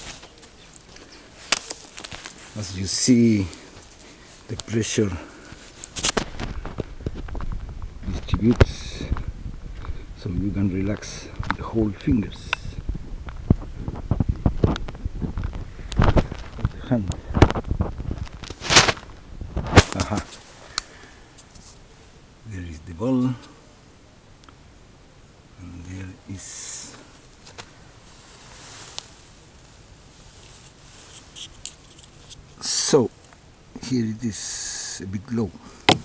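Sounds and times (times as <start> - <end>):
camera handling rustles: 0.0 - 2.6, 5.6 - 7.7, 17.3 - 21.8, 30.4 - 32.6
faint handling rustle: 0.0 - 22.0, 25.9 - 34.2
wind on microphone: 6.2 - 19.8.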